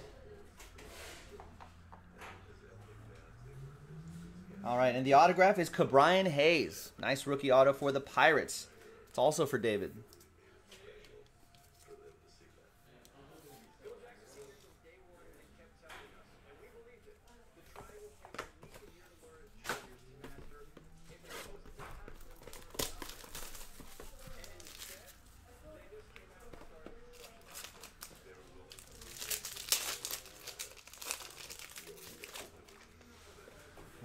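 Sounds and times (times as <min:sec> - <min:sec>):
packaging crinkling and tearing: 0:22.3 - 0:25.2, 0:27.1 - 0:32.9.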